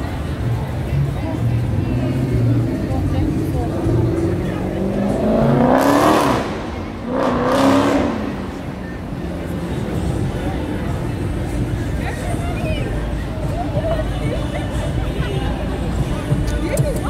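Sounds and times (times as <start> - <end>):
city street background noise: 0.0 - 17.0
cars accelerating past: 0.8 - 12.0.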